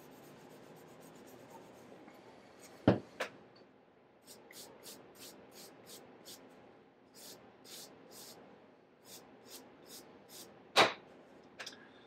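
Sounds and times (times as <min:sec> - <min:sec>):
rubbing on a book cover: 0:00.0 - 0:01.9.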